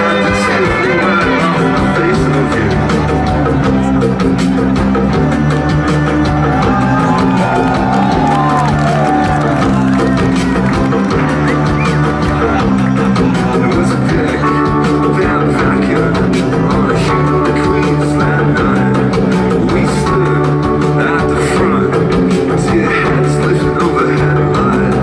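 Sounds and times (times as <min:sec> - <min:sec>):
live rock band playing: 0:00.0 - 0:25.0
singer's voice: 0:00.0 - 0:25.0.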